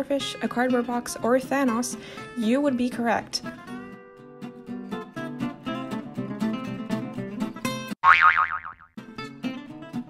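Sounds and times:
acoustic guitar music: 0:00.0 - 0:07.9
cartoon boing: 0:08.0 - 0:08.9.

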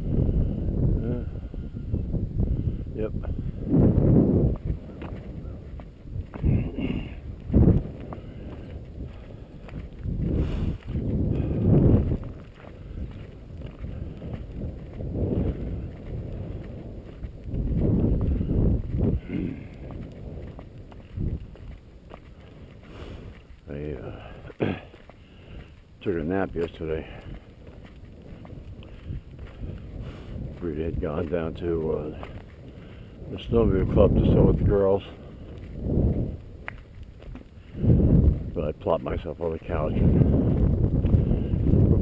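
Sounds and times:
wind buffeting microphone: 0:00.0 - 0:42.0
footsteps on gravel: 0:03.2 - 0:42.0.

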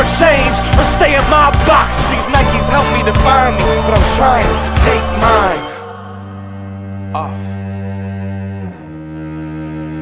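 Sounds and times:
low bowed strings: 0:00.0 - 0:10.0.

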